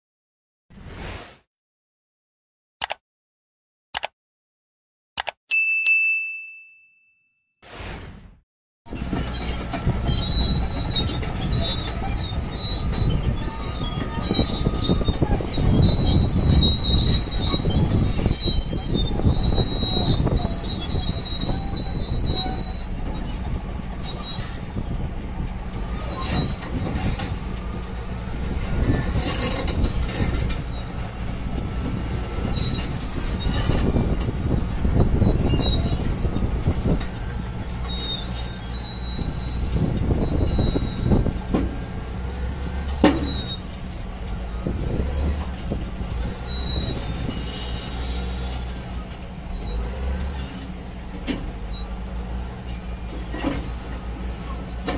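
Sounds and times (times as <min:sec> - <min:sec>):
short whoosh: 0:00.7 - 0:01.5, 0:07.6 - 0:08.4
notification bell ding: 0:05.5 - 0:07.4
bulldozer engine rumble: 0:08.9 - 0:54.9
steel tracks squealing and clanking: 0:08.9 - 0:54.9.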